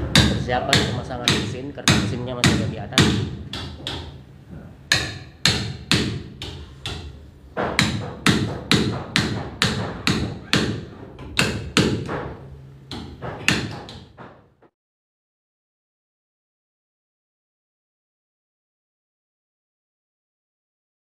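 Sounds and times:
hammer striking chisel into wood: 0.1s - 4.2s, 4.9s - 14.4s.

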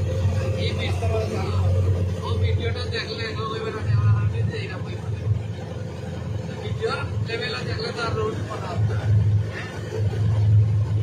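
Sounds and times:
engine humming: 0.0s - 11.0s
people's voices: 0.0s - 11.0s.

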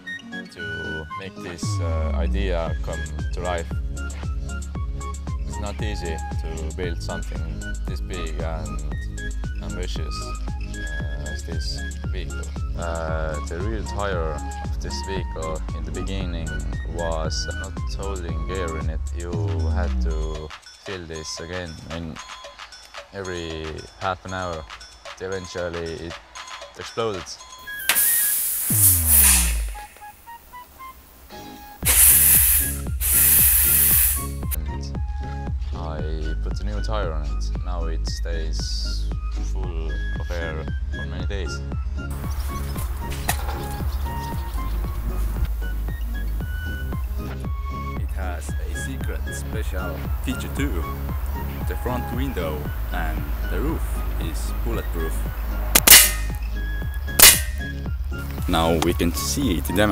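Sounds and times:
background music: 0.0s - 59.9s
electronic music: 28.7s - 30.2s
handgun shots: 55.8s - 56.4s, 57.2s - 57.7s.

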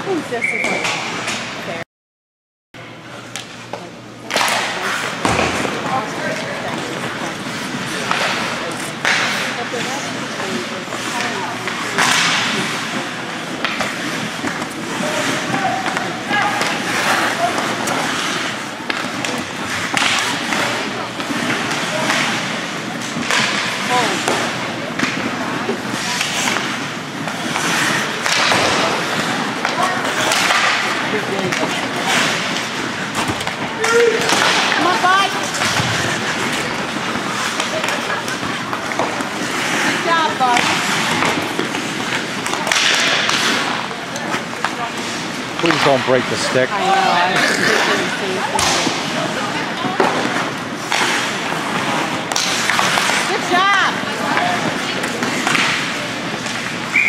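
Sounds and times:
spectators' voices: 3.0s - 57.0s
hockey sticks and puck clacking: 3.2s - 57.0s
skates scraping on ice: 4.3s - 57.0s.

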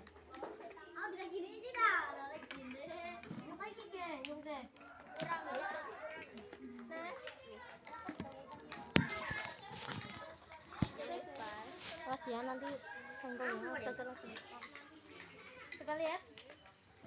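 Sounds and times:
children chattering: 0.0s - 16.7s.

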